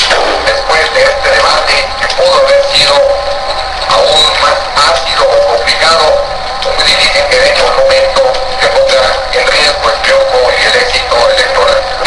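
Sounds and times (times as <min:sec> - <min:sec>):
thin radio music with singing: 0:00.0 - 0:12.0.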